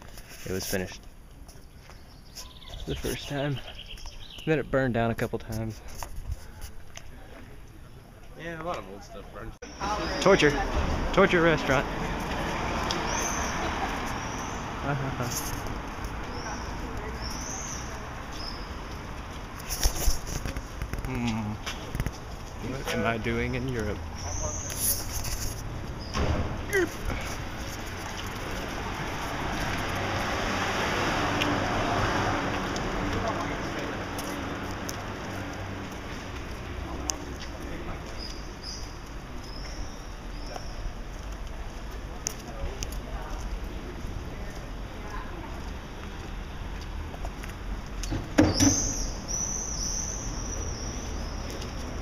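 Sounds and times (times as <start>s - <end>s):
rushing street noise: 0.0s - 52.0s.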